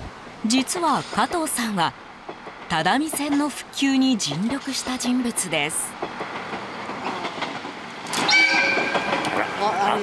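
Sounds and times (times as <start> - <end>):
train horn blast: 8.2 - 9.2.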